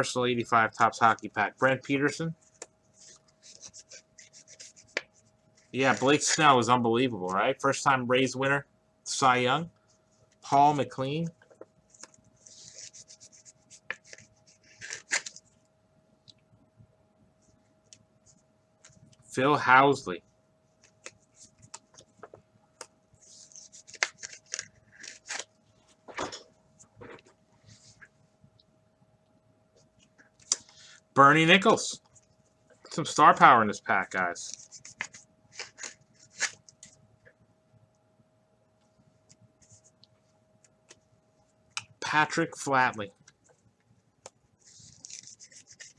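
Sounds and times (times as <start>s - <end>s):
faint steady hum: 0.0s - 45.9s.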